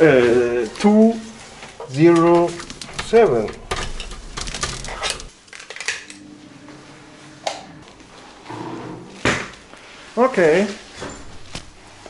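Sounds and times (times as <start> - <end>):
keys and door handle rattling: 2.2 - 5.3.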